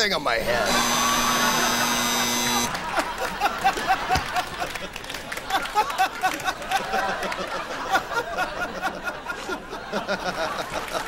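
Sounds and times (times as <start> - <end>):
electric buzz: 0.5 - 2.8.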